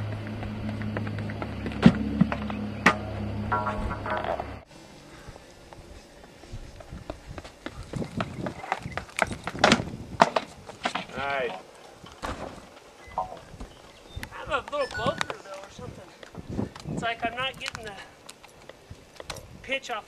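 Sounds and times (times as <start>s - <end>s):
running footsteps on runway: 0.0s - 2.6s, 5.6s - 9.7s.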